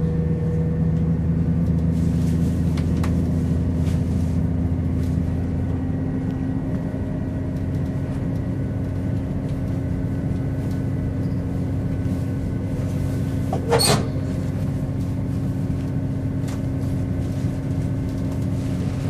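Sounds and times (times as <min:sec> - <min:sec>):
train diesel engine drone: 0:00.0 - 0:19.0.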